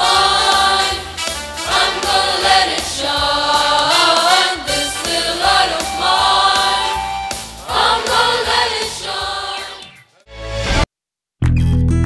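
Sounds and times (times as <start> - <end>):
choir singing: 0.0 - 9.9.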